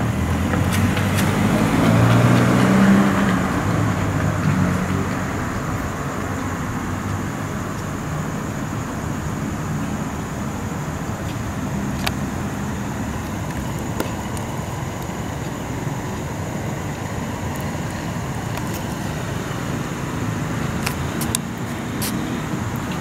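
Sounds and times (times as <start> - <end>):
road traffic noise: 0.0 - 23.0.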